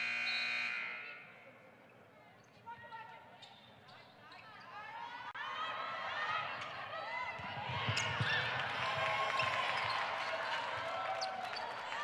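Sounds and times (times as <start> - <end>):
faint basketball player and ball noises: 0.0 - 12.0.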